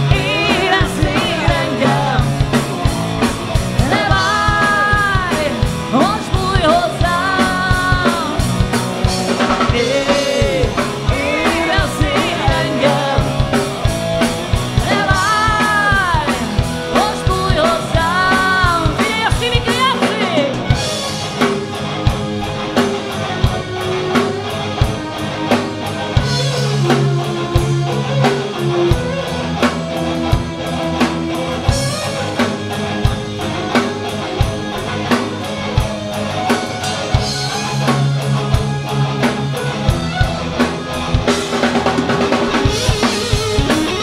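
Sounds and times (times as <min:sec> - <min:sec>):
bass guitar: 0:00.0 - 0:44.0
distorted electric guitars: 0:00.0 - 0:44.0
drum kit beat: 0:00.0 - 0:44.0.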